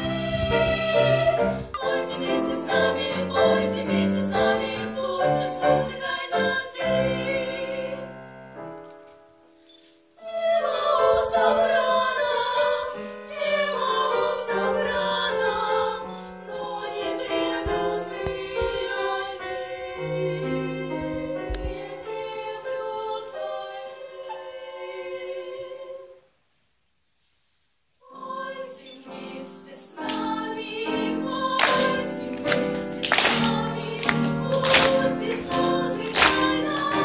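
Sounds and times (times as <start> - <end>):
girls singing in harmony: 0.0 - 8.4, 10.2 - 26.3, 28.0 - 37.0.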